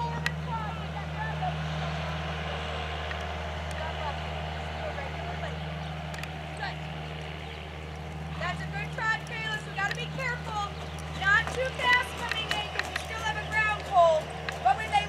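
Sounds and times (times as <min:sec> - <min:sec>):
low motor drone: 0:00.0 - 0:15.0.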